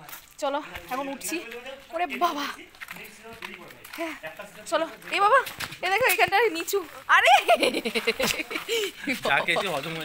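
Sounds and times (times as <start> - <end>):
people talking: 0.4 - 10.0.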